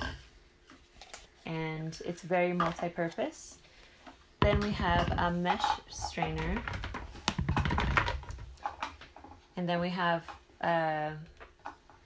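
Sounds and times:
plastic bowls clicking and knocking: 0:04.4 - 0:09.4.

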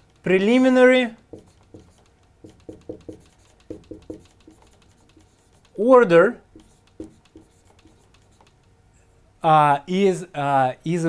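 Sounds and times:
marker writing on whiteboard: 0:00.0 - 0:08.7.

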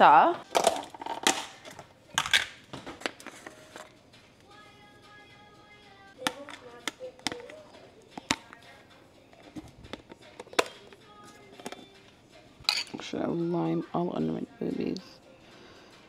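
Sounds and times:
utensils and dishes clinking: 0:00.4 - 0:04.0, 0:09.3 - 0:13.6.

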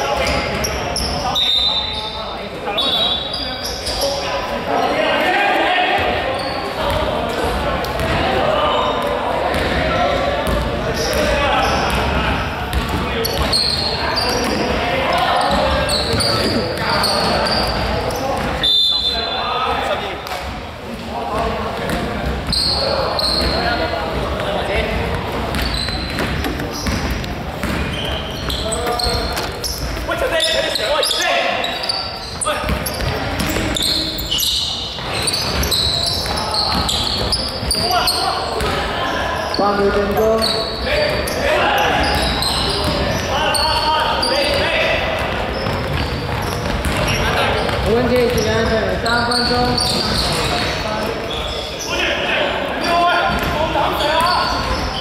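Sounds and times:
players calling and shouting: 0:00.0 - 0:55.0
ball bouncing on hardwood court: 0:09.0 - 0:13.6, 0:15.4 - 0:18.6, 0:24.2 - 0:29.8, 0:32.6 - 0:34.1, 0:38.6 - 0:38.8, 0:44.5 - 0:50.7, 0:53.2 - 0:53.6.

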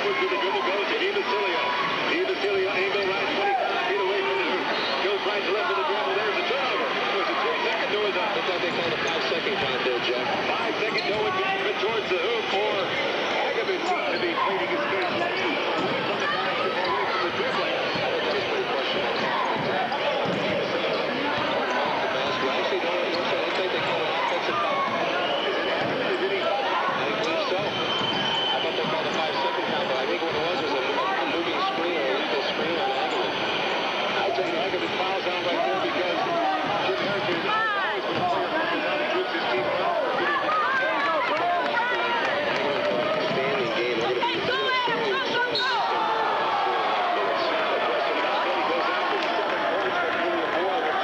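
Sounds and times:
crowd chatter: 0:00.0 - 0:51.0.

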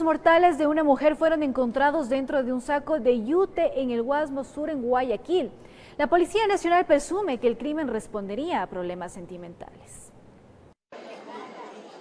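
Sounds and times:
chatter of many people: 0:10.9 - 0:12.0.

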